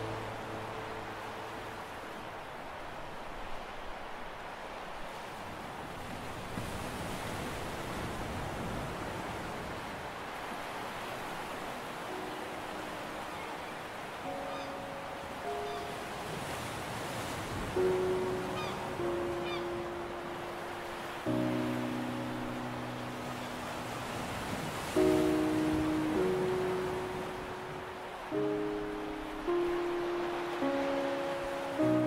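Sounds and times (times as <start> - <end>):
sea wind: 0.0 - 32.0
surf: 0.0 - 32.0.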